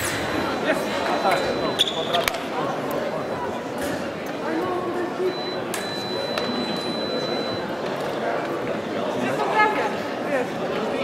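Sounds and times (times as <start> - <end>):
sports hall background noise: 0.0 - 11.0
scoring machine high beep: 0.4 - 2.2, 5.2 - 7.7.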